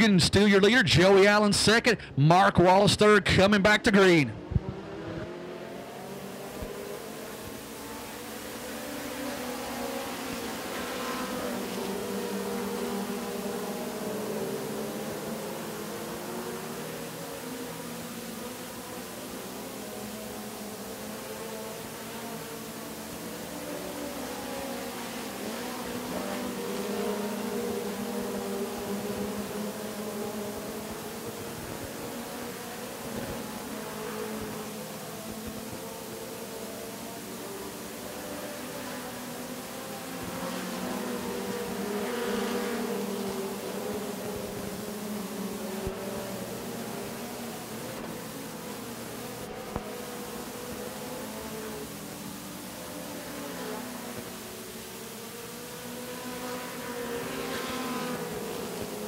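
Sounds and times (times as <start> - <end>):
race car engines droning: 0.0 - 59.0.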